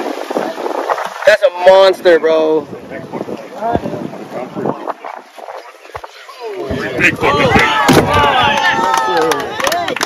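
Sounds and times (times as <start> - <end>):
voices talking in background: 0.0 - 10.0
wind buffeting microphone: 0.0 - 10.0.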